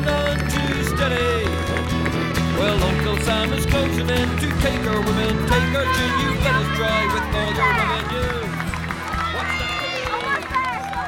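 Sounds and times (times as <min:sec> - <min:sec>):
people calling and cheering: 0:00.0 - 0:11.0
song playing: 0:00.0 - 0:11.0.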